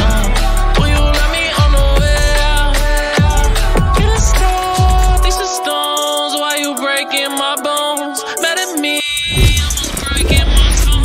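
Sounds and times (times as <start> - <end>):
intro music: 0.0 - 11.0
falling whooshes: 9.2 - 10.3
deep bass rumble: 9.3 - 11.0.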